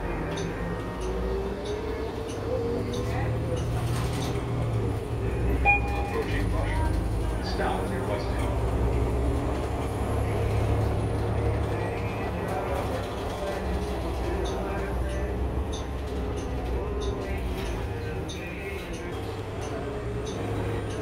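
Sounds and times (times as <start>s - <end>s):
bus engine and road rumble: 0.0s - 21.0s
electronic stop-request chime: 5.6s - 6.3s.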